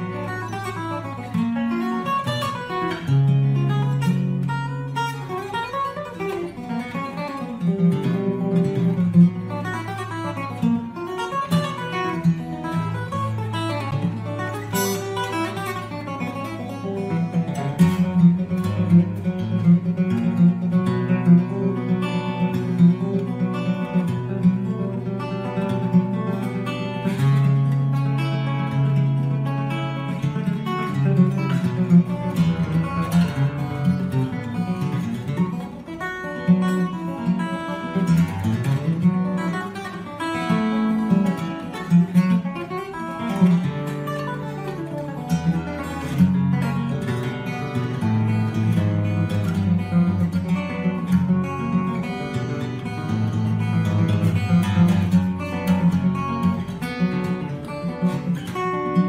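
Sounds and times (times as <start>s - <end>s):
acoustic guitar plucked and strummed: 0.0s - 59.0s.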